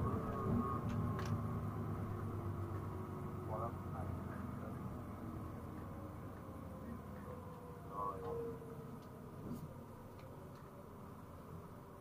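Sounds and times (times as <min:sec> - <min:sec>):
bus engine running low: 0:00.0 - 0:12.0.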